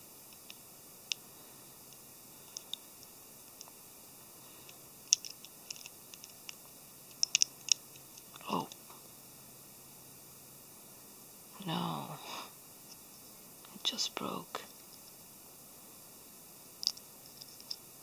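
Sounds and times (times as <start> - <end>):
plastic parts clicking: 5.1 - 7.8.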